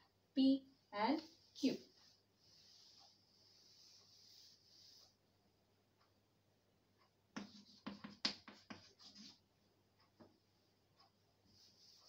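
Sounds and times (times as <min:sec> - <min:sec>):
chalk tapping and scratching: 0:01.2 - 0:05.2, 0:07.3 - 0:09.5, 0:11.0 - 0:12.0.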